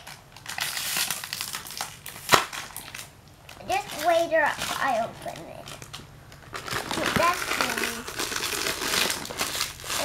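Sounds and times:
sharp crack of plastic bag: 0.0s - 4.8s, 5.7s - 10.0s
plastic bag crinkling: 0.0s - 10.0s.

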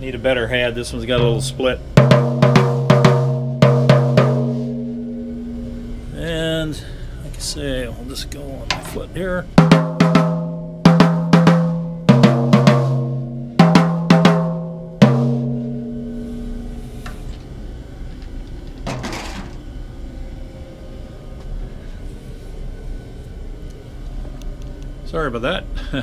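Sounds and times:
tom drums struck with stick: 1.1s - 5.7s, 9.6s - 16.7s.

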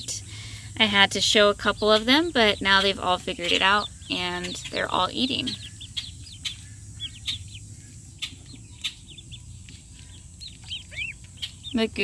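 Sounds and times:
ducklings peeping: 0.3s - 12.0s.

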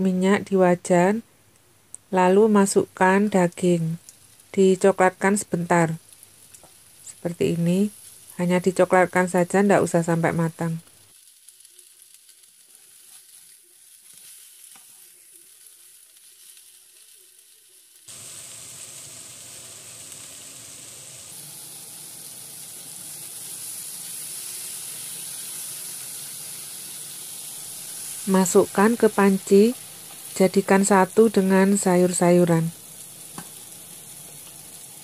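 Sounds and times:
meat sizzling in oil: 3.5s - 35.0s.

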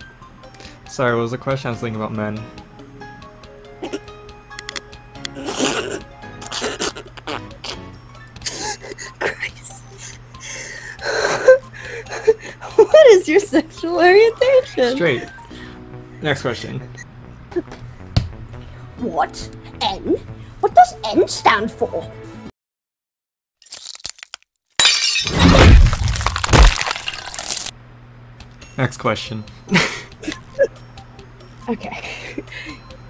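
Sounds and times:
glass shattering: 23.7s - 27.7s.

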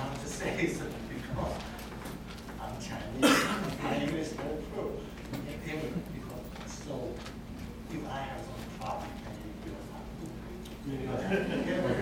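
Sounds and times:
man lecturing: 0.0s - 1.9s, 2.5s - 12.0s.

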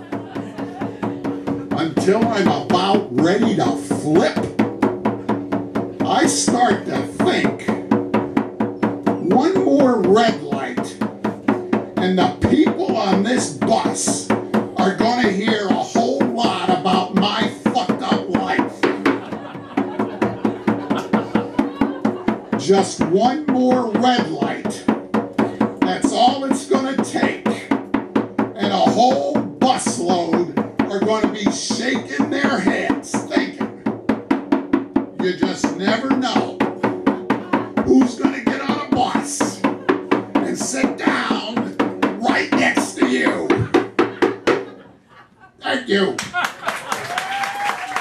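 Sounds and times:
hand drum beaten in steady rhythm: 0.0s - 44.9s.

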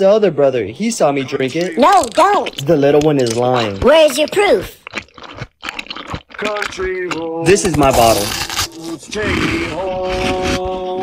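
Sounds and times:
person speaking: 0.0s - 4.8s, 6.3s - 11.0s
crunchy chewing: 0.8s - 11.0s.

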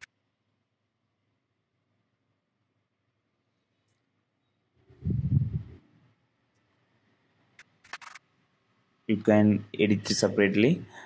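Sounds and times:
computer mouse clicks: 7.6s - 8.2s.

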